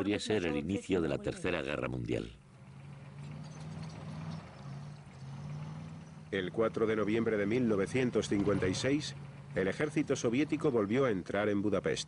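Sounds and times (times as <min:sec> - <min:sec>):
tank engine humming: 0:00.0 - 0:12.0.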